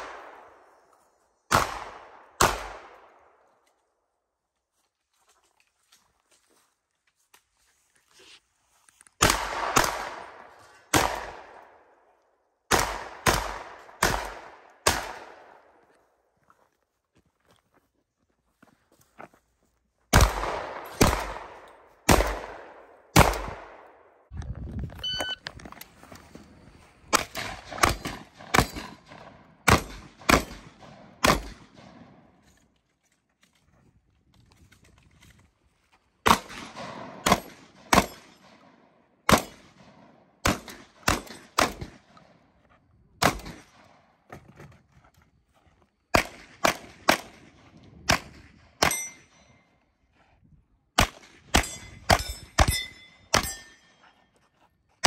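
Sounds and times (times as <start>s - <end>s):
gunshots: 1.5s - 3.1s, 9.2s - 11.7s, 12.7s - 15.6s, 20.1s - 23.9s, 27.1s - 32.2s, 36.2s - 38.6s, 39.2s - 42.1s, 43.2s - 44.0s, 46.1s - 49.2s, 51.0s - 53.7s.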